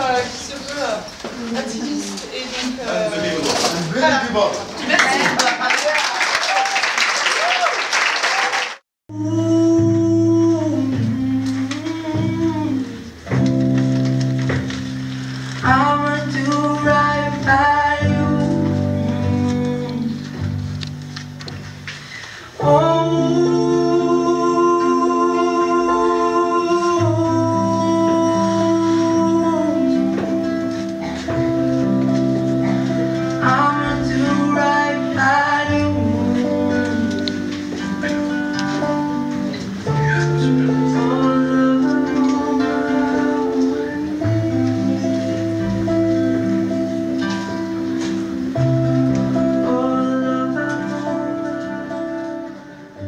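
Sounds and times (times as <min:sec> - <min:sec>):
person singing: 0:09.1 - 0:53.0
acoustic guitar strumming: 0:09.2 - 0:53.0.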